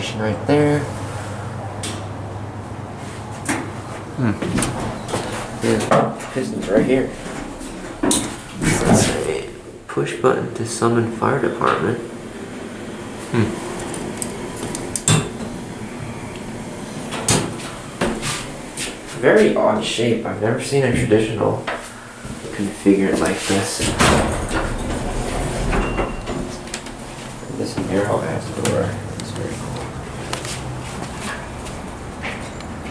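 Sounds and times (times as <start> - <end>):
steady low hum: 0.0 - 32.9
metal cabinet door clacks: 23.8 - 27.0.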